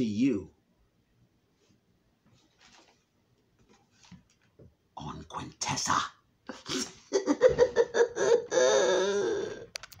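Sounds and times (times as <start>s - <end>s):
man laughing: 6.5s - 9.6s.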